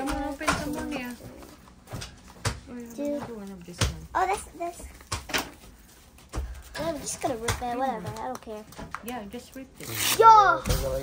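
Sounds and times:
child speaking: 0:04.2 - 0:04.9, 0:06.8 - 0:08.7, 0:10.2 - 0:10.8.

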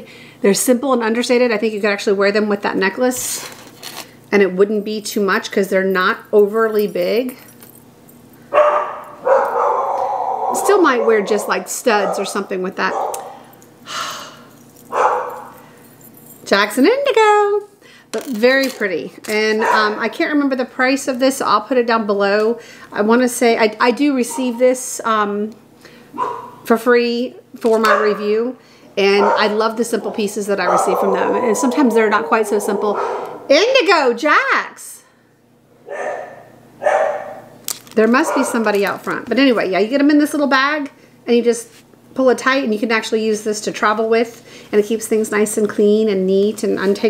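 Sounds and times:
woman breathing: 0:00.0 - 0:00.4, 0:13.8 - 0:14.5, 0:22.6 - 0:22.9, 0:44.4 - 0:44.7
woman speaking: 0:00.0 - 0:03.5, 0:04.3 - 0:07.4, 0:10.5 - 0:13.1, 0:16.4 - 0:25.6, 0:26.7 - 0:35.2, 0:38.0 - 0:47.0
dog barking: 0:08.5 - 0:13.5, 0:14.9 - 0:15.6, 0:19.6 - 0:20.0, 0:26.2 - 0:26.6, 0:27.8 - 0:28.2, 0:29.1 - 0:33.7, 0:35.8 - 0:37.5, 0:38.2 - 0:38.6.

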